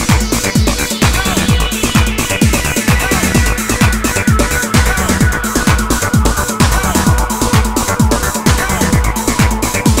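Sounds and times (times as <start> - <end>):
acid techno music: 0.0 - 10.0
kick drum: 0.0 - 10.0
ticking hi-hats: 0.0 - 10.0.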